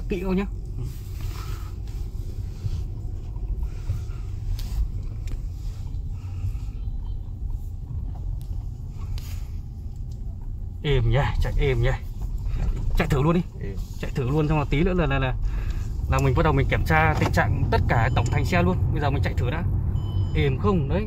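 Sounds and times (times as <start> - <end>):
car driving rumble from inside: 0.0 - 21.0.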